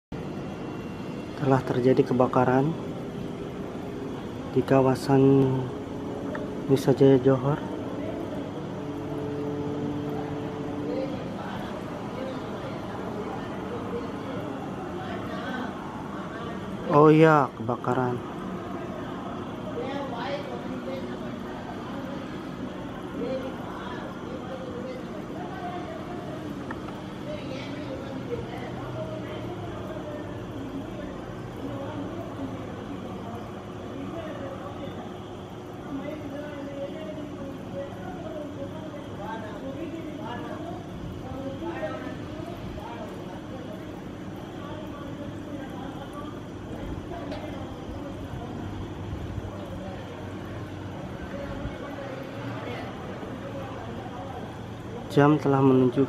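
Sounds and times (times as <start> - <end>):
faint voices talking: 0.1 - 56.0
steady low hum: 0.1 - 56.0.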